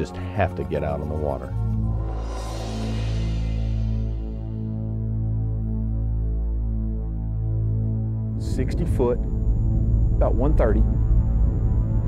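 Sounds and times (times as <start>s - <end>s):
low throbbing hum: 0.0s - 12.0s.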